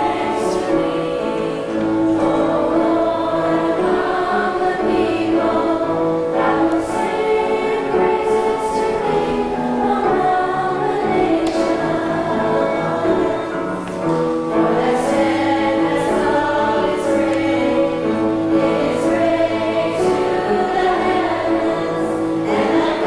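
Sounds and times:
children's choir singing a hymn: 0:00.0 - 0:23.0.

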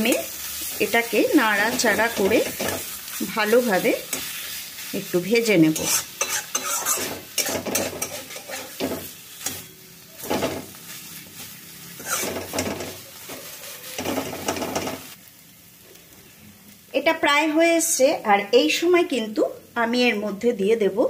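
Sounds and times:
spatula scraping a wok: 0:00.0 - 0:15.2
paste sizzling in oil: 0:00.0 - 0:17.2.

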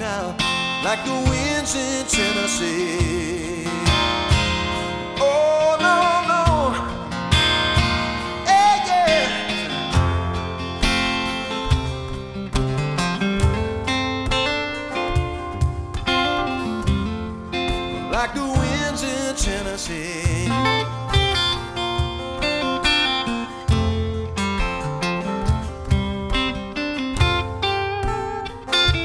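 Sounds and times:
acoustic guitar strummed and picked: 0:00.0 - 0:29.0
high sliding guitar melody: 0:00.0 - 0:29.0.

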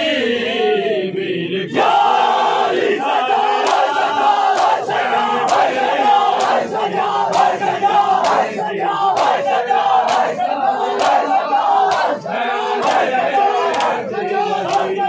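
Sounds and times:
men chanting in unison: 0:00.0 - 0:15.0
hands slapping bare chests: 0:03.6 - 0:04.8, 0:05.5 - 0:06.7, 0:07.3 - 0:07.6, 0:08.2 - 0:08.5, 0:09.1 - 0:12.2, 0:12.8 - 0:13.1, 0:13.7 - 0:14.0, 0:14.6 - 0:15.0.

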